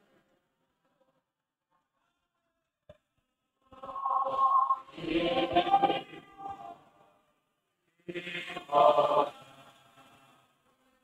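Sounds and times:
group singing a hymn: 3.9 - 6.8, 8.5 - 9.5.

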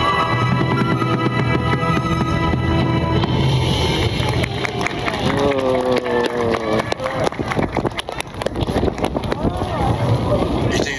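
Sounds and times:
crowd noise: 0.0 - 10.9
street performance music: 0.0 - 10.9.

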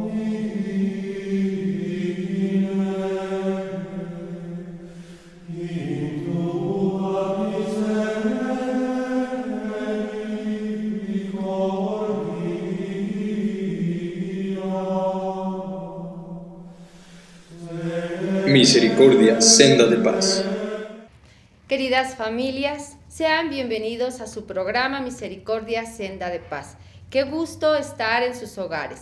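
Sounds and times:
voices singing religious chant: 0.0 - 21.1.

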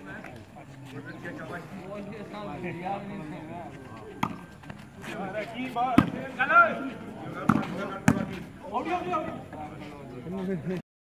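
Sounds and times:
men shouting and talking: 0.0 - 10.8
volleyball slaps: 4.2 - 4.4, 6.0 - 6.2, 7.4 - 8.4.

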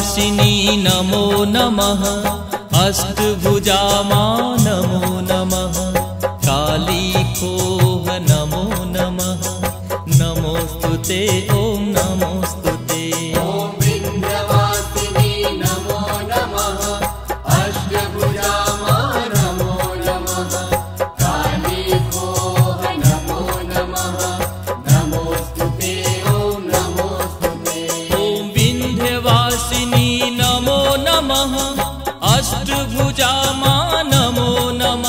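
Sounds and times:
devotional instrumental music: 0.0 - 35.0
steady percussion beat: 0.0 - 35.0.

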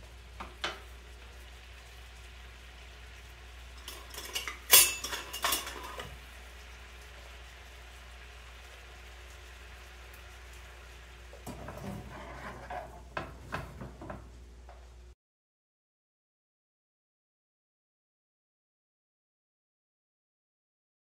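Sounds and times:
meat frying in a skillet: 0.0 - 15.2
metal utensils clattering on pans: 3.8 - 6.2, 11.4 - 14.3.

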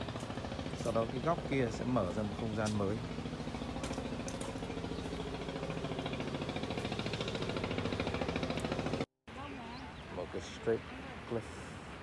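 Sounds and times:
engine running with pulsing beat: 0.0 - 9.1.

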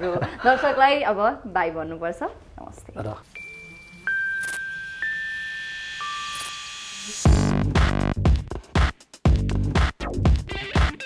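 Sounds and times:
chime-like synthesizer tones: 3.3 - 7.5
heavily beating electronic track: 7.2 - 11.0.

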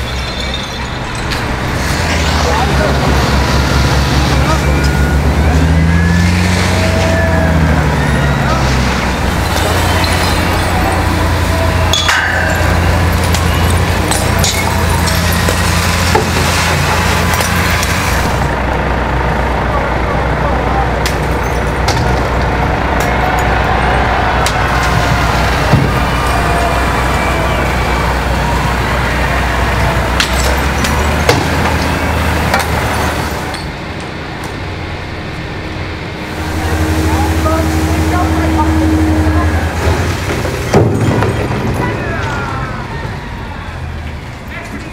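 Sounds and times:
truck engine drone: 0.0 - 44.9
sharp impacts: 0.8 - 18.6
water jets rushing: 1.4 - 18.6
indistinct shouting: 2.2 - 18.6, 22.1 - 33.5, 36.2 - 44.7.

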